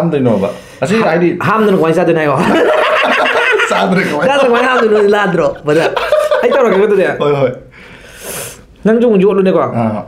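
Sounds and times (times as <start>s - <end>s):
man laughing: 2.4s - 7.3s.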